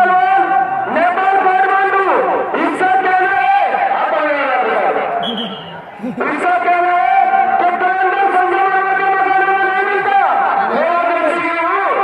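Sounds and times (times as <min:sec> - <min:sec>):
man calling through loudspeaker: 0:00.0 - 0:12.0.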